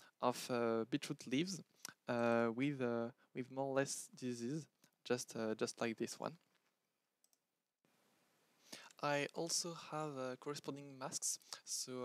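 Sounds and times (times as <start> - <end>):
low room hiss: 0.0 - 6.5, 7.9 - 12.0.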